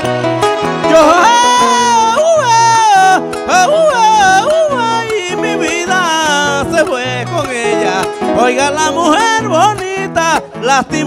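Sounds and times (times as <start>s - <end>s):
acoustic guitars: 0.0s - 11.0s
man singing: 0.8s - 11.0s.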